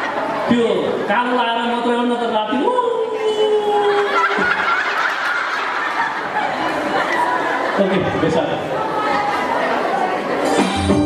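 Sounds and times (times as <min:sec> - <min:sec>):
audience laughing: 0:00.0 - 0:01.4, 0:03.0 - 0:11.0.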